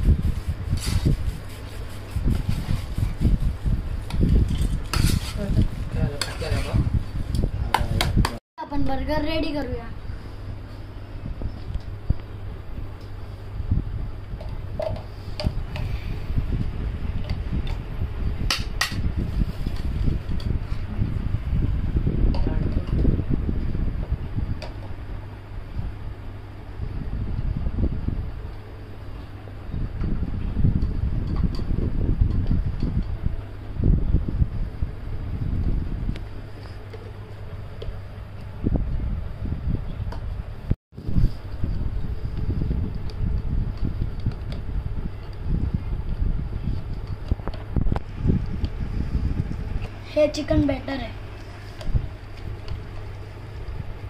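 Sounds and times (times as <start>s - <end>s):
air gusting on microphone: 0.0s - 8.4s, 9.1s - 54.0s
fan humming: 0.0s - 54.0s.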